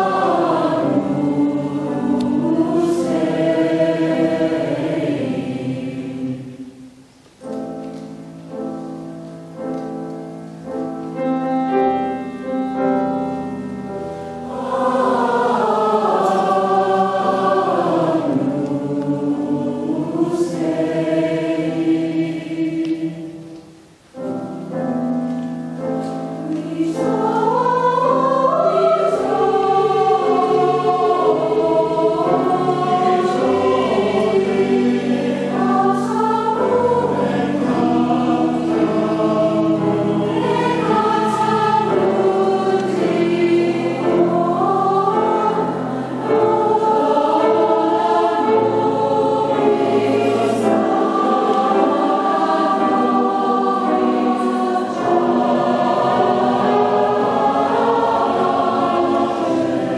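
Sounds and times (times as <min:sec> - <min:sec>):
choir singing: 0:00.0 - 0:59.9
piano accompaniment: 0:00.0 - 0:59.9.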